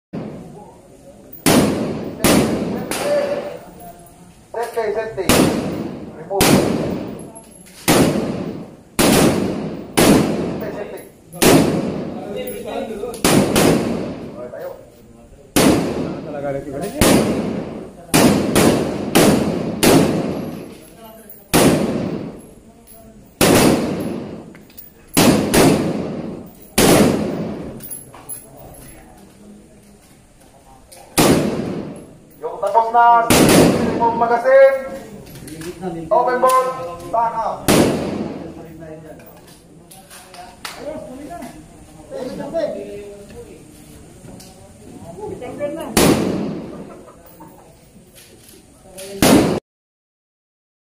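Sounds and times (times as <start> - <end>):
rifle shots: 1.4 - 3.5, 5.2 - 12.3, 13.2 - 14.5, 15.6 - 16.3, 16.9 - 20.8, 21.5 - 22.4, 23.4 - 24.5, 25.1 - 27.8, 31.2 - 32.1, 32.8 - 34.4, 37.6 - 38.6, 45.9 - 46.9, 49.2 - 49.6
gunshot echoing: 1.4 - 3.6, 5.2 - 12.4, 13.2 - 14.5, 15.6 - 20.8, 21.5 - 22.4, 23.4 - 24.5, 25.2 - 27.8, 31.2 - 32.1, 33.2 - 34.4, 37.6 - 38.6, 46.0 - 46.9, 49.2 - 49.6.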